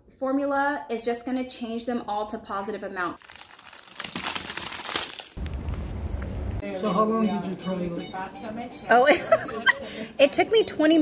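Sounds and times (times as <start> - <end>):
plastic sleeve crinkling: 3.2 - 6.2.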